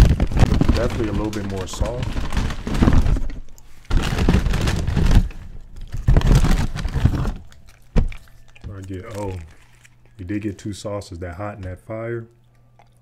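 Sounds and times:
crunchy shell being chewed: 0:07.1 - 0:10.2, 0:12.3 - 0:13.0.

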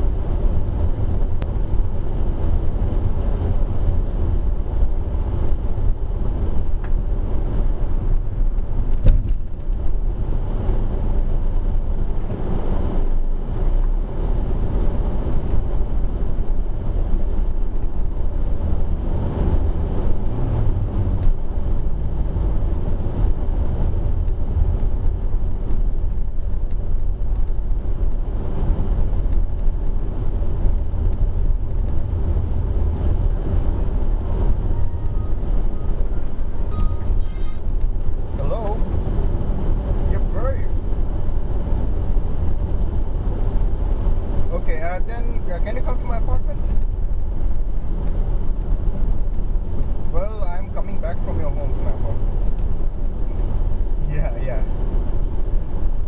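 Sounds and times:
car engine and tyres on snow: 0:00.0 - 0:56.0.

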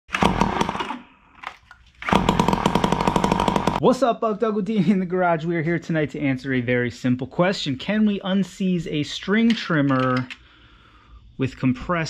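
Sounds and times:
string trimmer engine running: 0:02.1 - 0:03.8.

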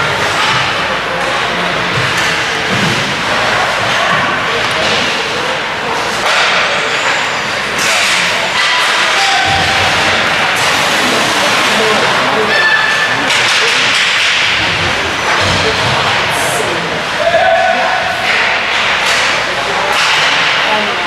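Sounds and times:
people shouting: 0:08.6 - 0:10.1, 0:17.2 - 0:18.8
hockey sticks knocking puck: 0:18.2 - 0:20.7.

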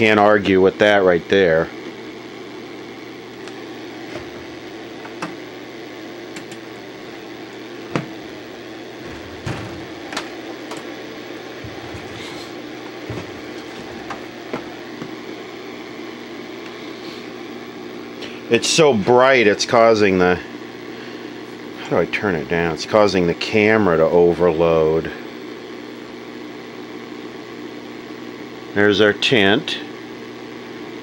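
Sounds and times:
electrical hum and hiss: 0:00.0 - 0:31.0.

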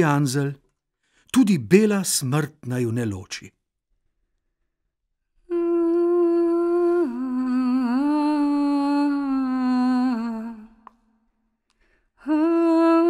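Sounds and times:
woman humming: 0:05.5 - 0:10.9, 0:12.2 - 0:13.0.

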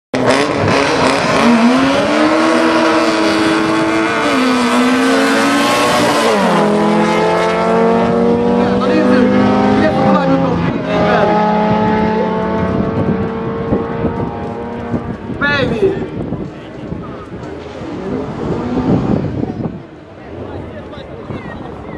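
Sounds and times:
cars accelerating through gears: 0:00.2 - 0:15.4, 0:17.3 - 0:19.9.

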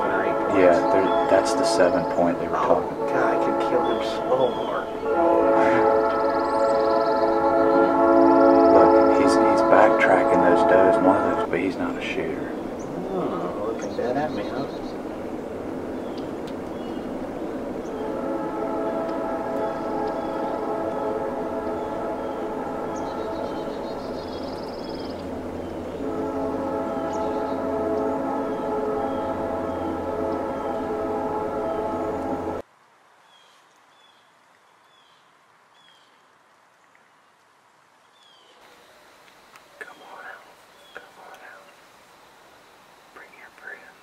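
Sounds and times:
horn chord: 0:00.0 - 0:32.6
low hum: 0:00.0 - 0:32.6
faint bird chirps: 0:39.8 - 0:42.3.

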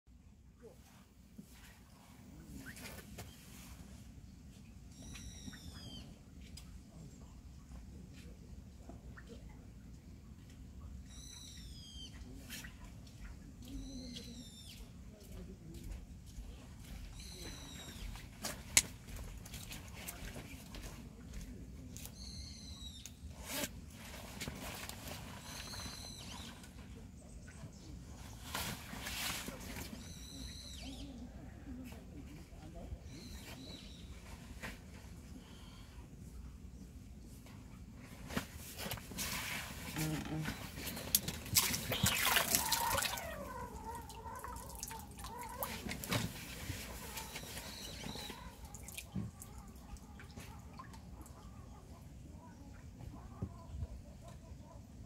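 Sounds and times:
faint outdoor background: 0:00.1 - 0:55.0.

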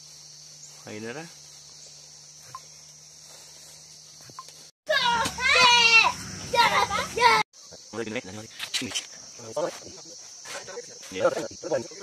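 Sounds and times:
high-pitched insect chirring: 0:00.0 - 0:12.0.

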